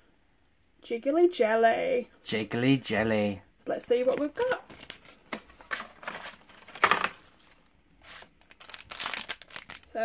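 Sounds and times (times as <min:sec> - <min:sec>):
plastic packet crinkling: 0:04.4 - 0:10.0
plastic packet ripping: 0:08.0 - 0:10.0.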